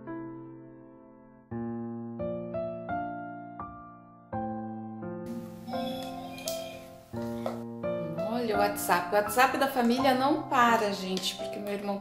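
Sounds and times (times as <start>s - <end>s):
slow soft piano chords: 0.0s - 12.0s.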